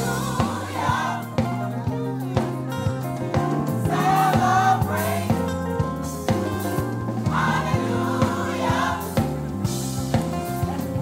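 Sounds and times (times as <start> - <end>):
gospel choir singing: 0.0 - 2.4, 3.2 - 10.3
steady beat: 0.0 - 11.0.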